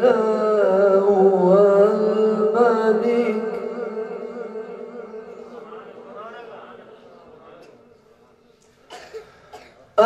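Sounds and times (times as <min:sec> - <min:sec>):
person coughing: 0:08.9 - 0:10.0.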